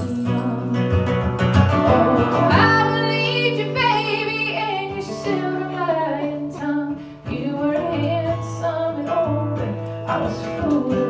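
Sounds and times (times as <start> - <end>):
strummed acoustic guitar: 0.0 - 11.0
woman singing wordless line: 1.8 - 11.0.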